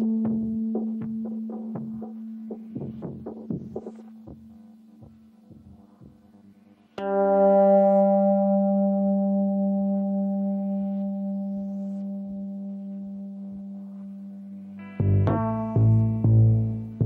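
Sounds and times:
electric guitar note ringing: 0.0 - 6.1, 6.9 - 17.0
soft low pulse: 0.0 - 6.7.

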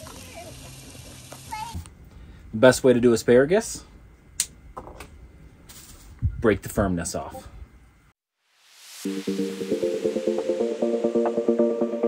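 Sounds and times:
steak sizzling on a griddle: 0.0 - 1.8.

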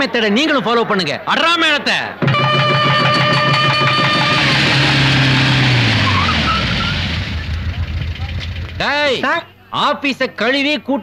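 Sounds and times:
car engine hum: 2.8 - 9.2.

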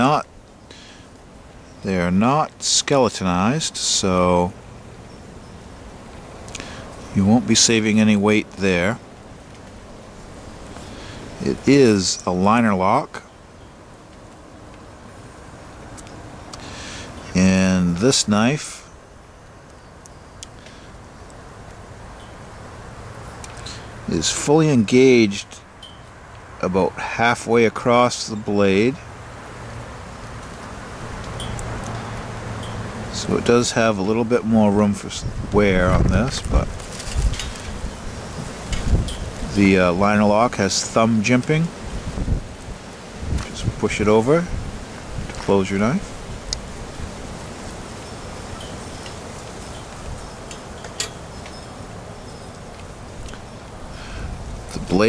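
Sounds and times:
wind noise on microphone: 31.0 - 52.4, 53.0 - 55.0.

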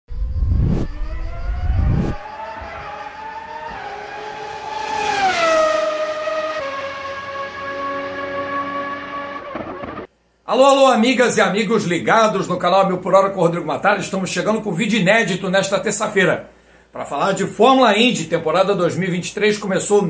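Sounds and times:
low rumble: 0.1 - 2.2
long pitched engine tone: 0.1 - 4.7, 5.3 - 10.1.

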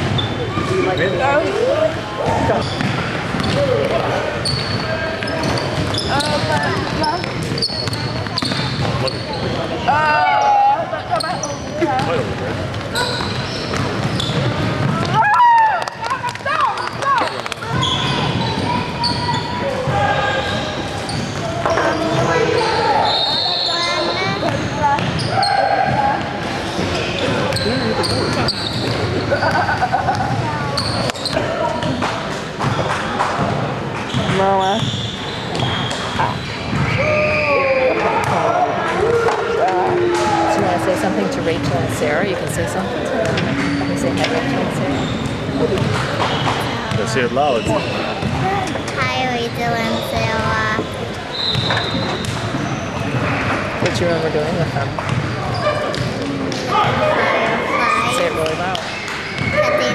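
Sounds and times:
sneakers squeaking on floor: 0.0 - 38.6, 40.0 - 54.0, 54.6 - 59.9
people talking and calling out: 0.0 - 59.9.

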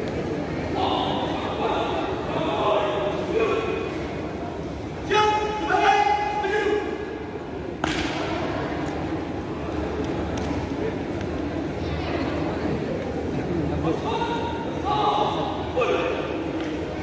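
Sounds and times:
murmur of voices: 0.0 - 17.0
person shouting a command: 5.0 - 7.0, 14.0 - 16.4.

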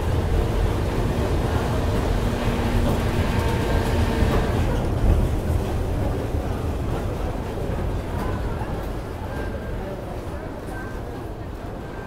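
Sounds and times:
carousel mechanical rumble: 0.0 - 8.0.

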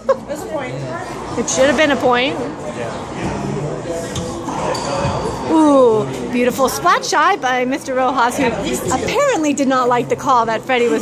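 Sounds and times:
low voices: 0.0 - 11.0.

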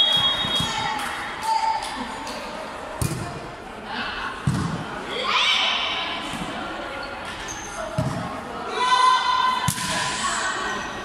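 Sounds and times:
volleyball struck with echoing thud: 3.0 - 3.4, 4.4 - 5.0, 8.0 - 8.4, 9.6 - 10.1.

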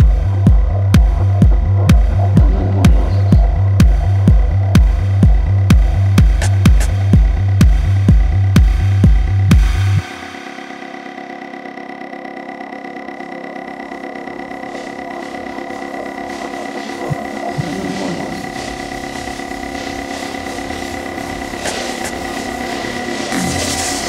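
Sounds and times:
held synth tones: 0.0 - 4.8, 13.7 - 24.0
low thumps: 0.0 - 10.0.

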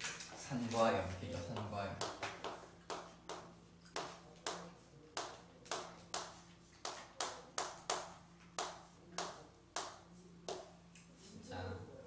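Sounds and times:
chalk tapping and scraping on blackboard: 1.5 - 11.4.

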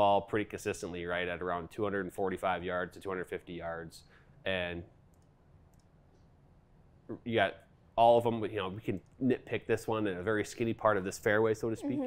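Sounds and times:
faint clicks: 5.1 - 6.3.

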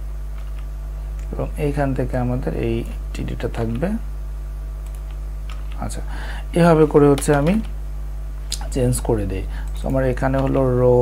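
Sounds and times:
low electrical hum: 0.0 - 11.0
keyboard keystrokes: 7.1 - 7.8.

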